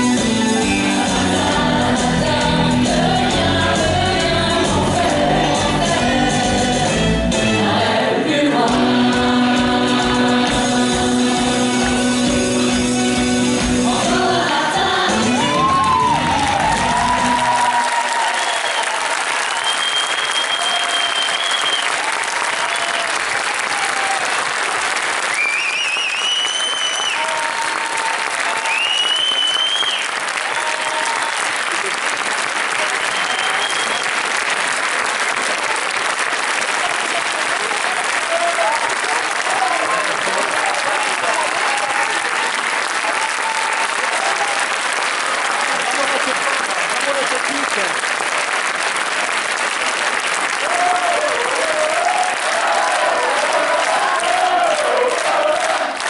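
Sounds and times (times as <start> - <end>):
music: 0.0 - 17.8
audience applauding: 10.4 - 56.0
audience shouts: 15.3 - 24.4, 25.3 - 31.6, 37.7 - 42.3, 43.0 - 44.8, 50.6 - 56.0
high whistles: 18.3 - 22.0, 25.3 - 27.2, 28.6 - 30.2, 33.0 - 34.2.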